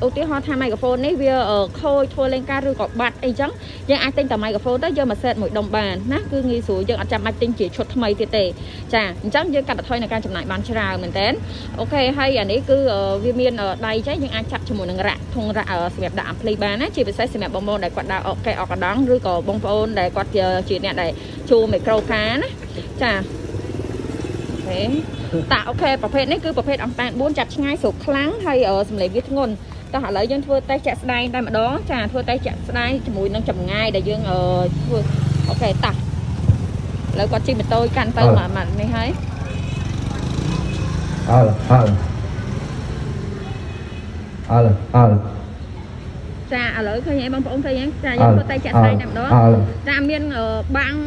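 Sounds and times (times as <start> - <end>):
motorbike and car engines passing: 0.0 - 51.0
person talking: 38.0 - 38.7, 41.3 - 42.1, 44.5 - 45.5, 48.0 - 49.9.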